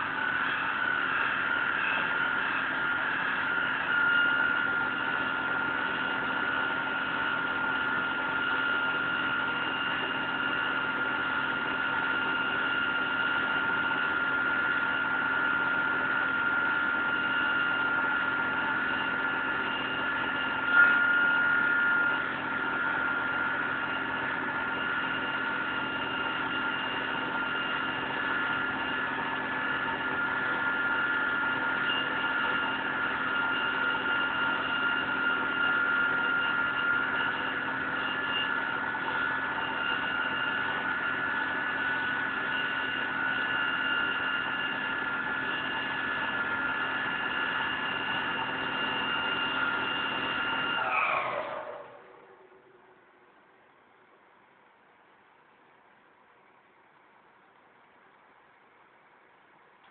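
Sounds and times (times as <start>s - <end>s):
fire engine pump whine: 0.0s - 53.7s.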